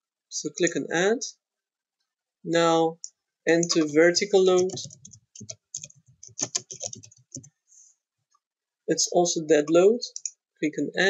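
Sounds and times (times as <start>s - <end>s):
typing on computer keyboard: 3.6s - 7.5s.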